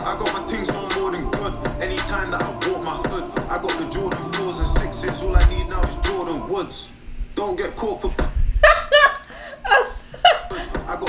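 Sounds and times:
woman laughing loudly: 0:08.5 - 0:10.9.

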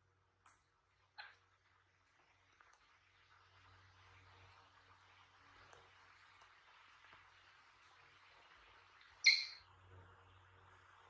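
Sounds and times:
baby monkey squeak: 0:09.2 - 0:09.6.

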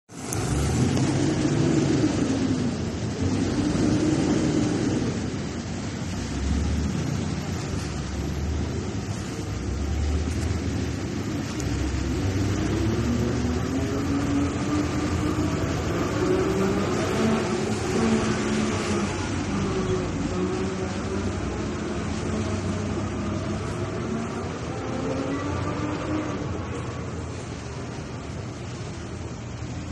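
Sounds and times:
low traffic rumble: 0:00.1 - 0:29.9
vehicles passing: 0:00.1 - 0:29.9.

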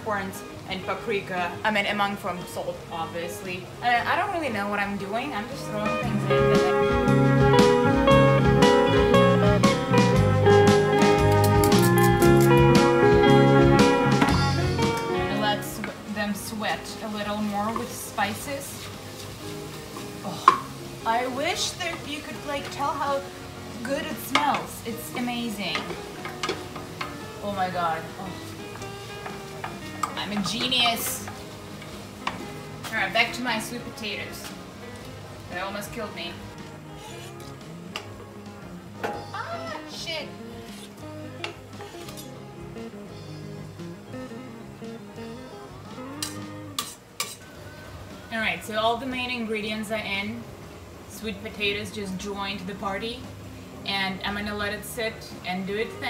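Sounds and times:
background music: 0:00.0 - 0:56.0
vegetables sizzling in oil: 0:00.0 - 0:56.0.

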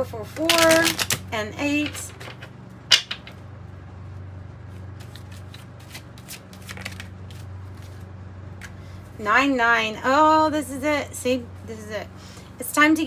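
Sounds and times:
low steady hum: 0:00.0 - 0:13.0
cards being shuffled: 0:00.4 - 0:03.4, 0:04.7 - 0:08.8.

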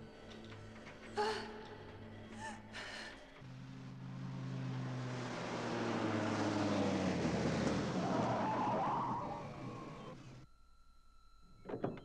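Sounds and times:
truck engine approaching: 0:03.2 - 0:10.4.

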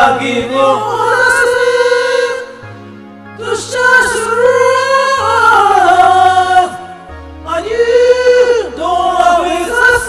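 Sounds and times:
karaoke backing track: 0:00.0 - 0:10.0
people singing into microphones: 0:00.0 - 0:10.0.

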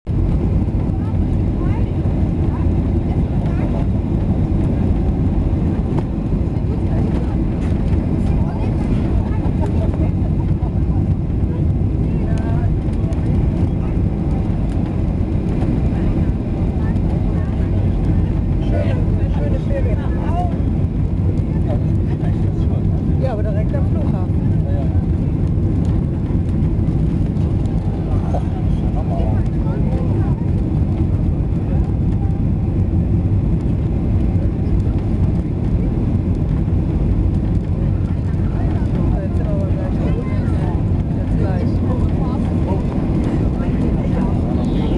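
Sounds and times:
jet engine and airflow rumble: 0:00.0 - 0:44.9.

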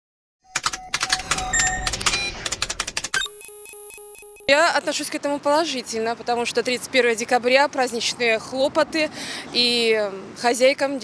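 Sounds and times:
glitchy clicks and ticks: 0:00.5 - 0:04.5
pulsing synthetic tone: 0:03.2 - 0:04.5.

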